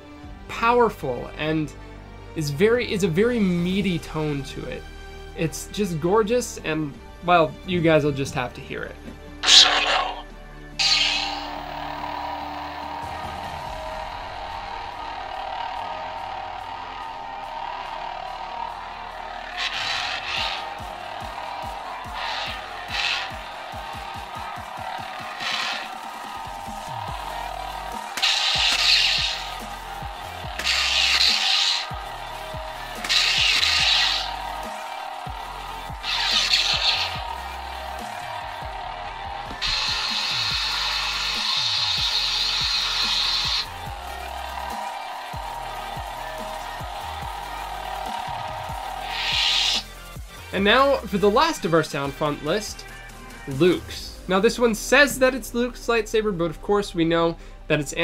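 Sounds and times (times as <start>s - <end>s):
sustained buzzing: 9.4s - 50.3s.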